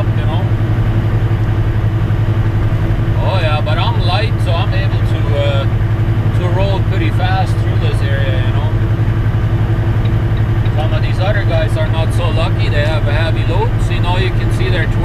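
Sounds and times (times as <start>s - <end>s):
diesel truck engine drone: 0.0s - 15.0s.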